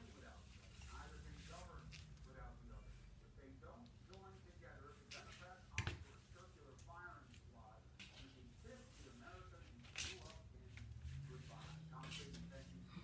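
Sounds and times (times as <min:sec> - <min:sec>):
faint low talking: 0:00.0 - 0:13.0.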